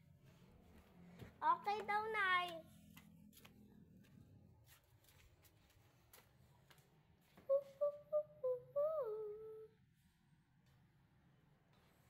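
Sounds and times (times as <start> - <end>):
girl humming a tune: 7.5 - 9.8.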